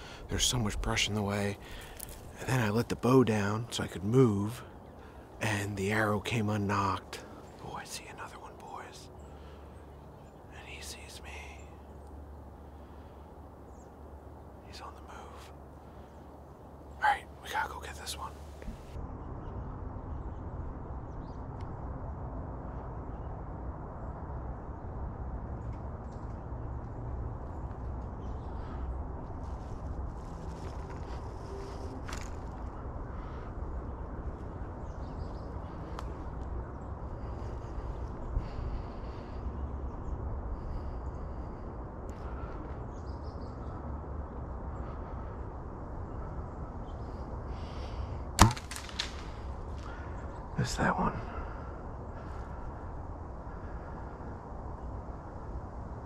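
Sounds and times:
faint crackles: 0.0 - 4.0, 25.6 - 39.5, 47.0 - 52.9
bow shot snap: 48.4 - 49.5.

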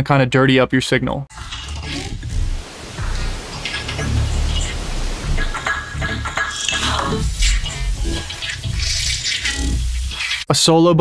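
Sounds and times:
noisy ambient wash: 1.3 - 10.5
low rumble: 1.9 - 10.0.

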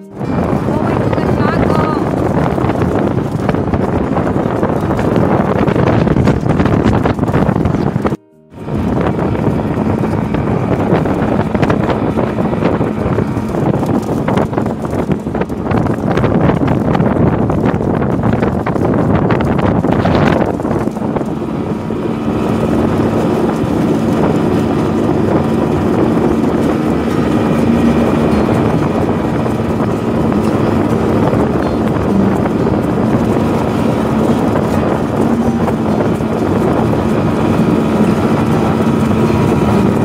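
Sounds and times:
motorboat engine humming: 0.0 - 40.0
wind buffeting microphone: 0.0 - 40.0.

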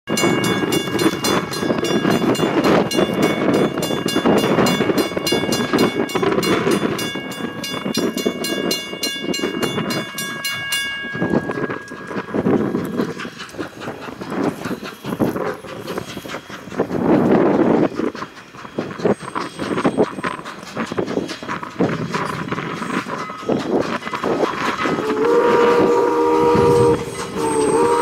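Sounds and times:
steam locomotive exhaust beats: 0.1 - 28.0
steam whistle chord: 25.0 - 28.0.

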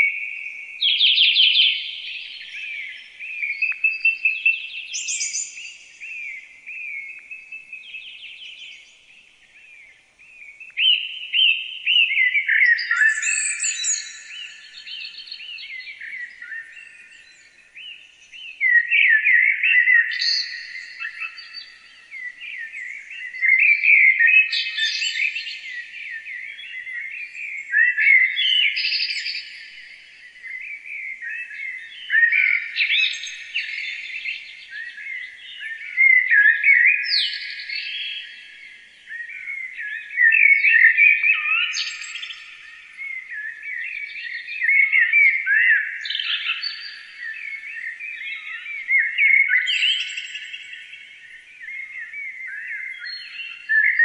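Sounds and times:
songbirds singing: 0.0 - 54.0.

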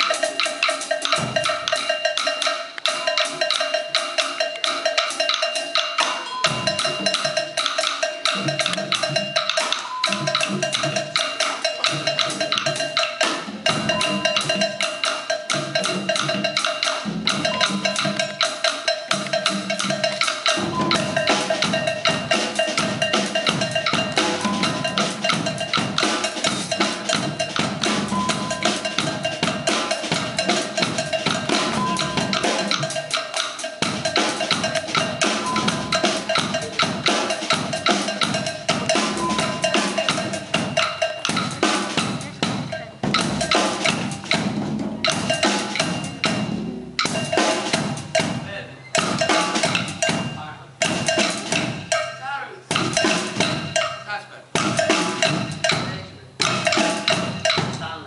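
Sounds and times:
percussion ensemble playing: 0.0 - 58.0.

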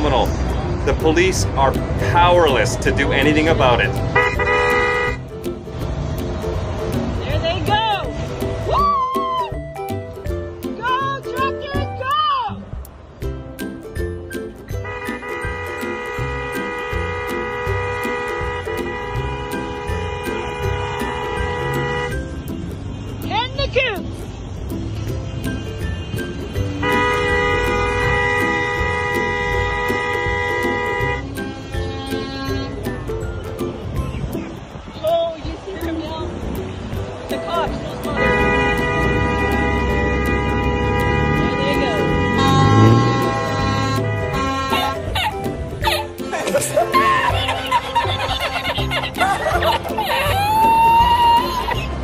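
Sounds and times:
vehicle horn blast: 4.1 - 5.2, 14.8 - 22.1, 26.8 - 32.8, 38.1 - 45.2.

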